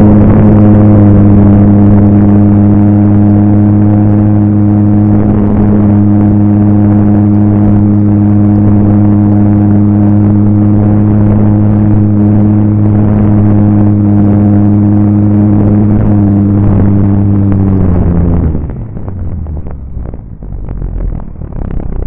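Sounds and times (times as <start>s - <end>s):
model airplane engine droning: 0.0s - 18.7s
wind rushing: 0.0s - 22.0s.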